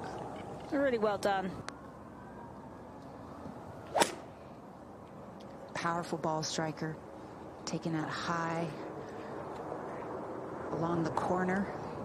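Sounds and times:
golf club swish: 0:03.8 - 0:04.4
golf club striking ball: 0:03.9 - 0:04.3.

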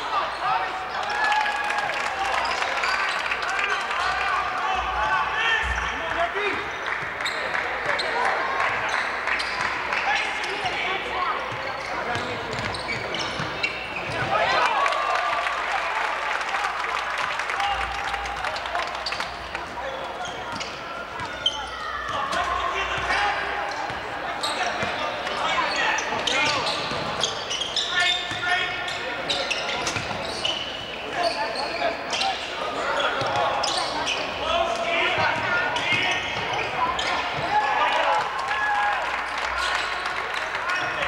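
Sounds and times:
crowd voices: 0:00.0 - 0:41.0.

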